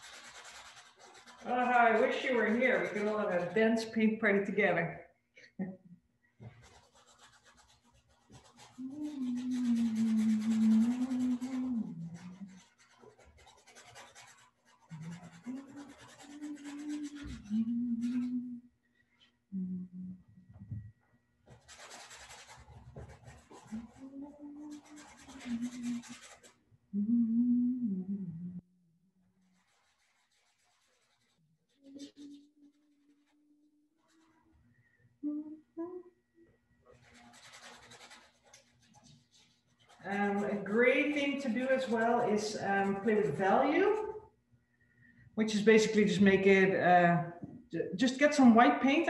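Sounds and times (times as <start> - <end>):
paintbrush scraping canvas: 0.0 - 4.4, 6.4 - 18.4, 21.4 - 26.6, 29.4 - 34.7, 36.9 - 44.2
woman humming: 8.7 - 12.6, 14.9 - 18.7, 19.5 - 20.8, 23.7 - 26.2, 26.9 - 28.7, 31.7 - 33.0, 35.2 - 36.2.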